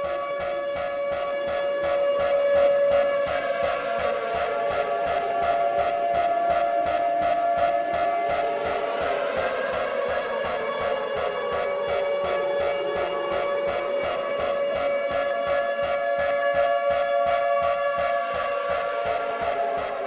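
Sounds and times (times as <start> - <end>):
alarm siren wailing: 0.0 - 20.0
electronic music with steady beat: 0.0 - 20.0.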